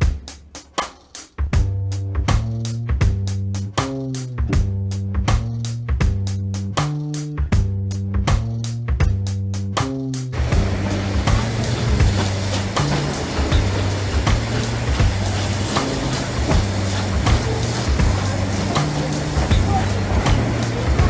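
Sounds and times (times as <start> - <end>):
background music with beat: 0.0 - 21.0
train coaches rolling on track: 10.4 - 21.0.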